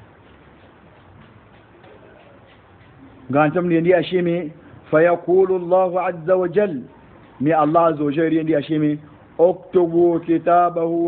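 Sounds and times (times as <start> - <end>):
faint irregular ticks: 6.9 - 7.4.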